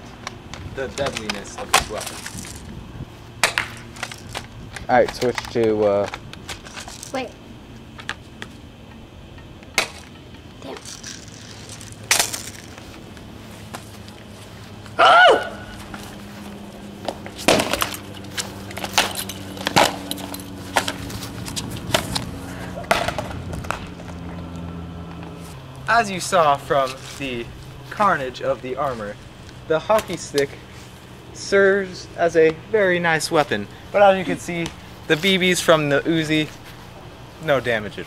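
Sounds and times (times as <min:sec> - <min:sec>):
loud shout: 0:15.0 - 0:15.8
hockey stick striking shin guards: 0:17.1 - 0:18.0, 0:22.8 - 0:23.9.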